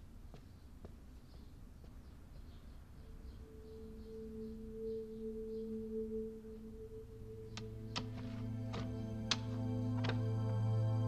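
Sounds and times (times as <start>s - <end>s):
faint high chirps: 2.1s - 8.4s
low held notes: 2.5s - 11.0s.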